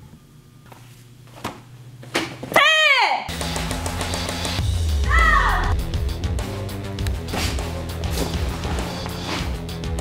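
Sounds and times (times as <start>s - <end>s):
woman yelling: 2.5s - 3.3s, 5.0s - 5.8s.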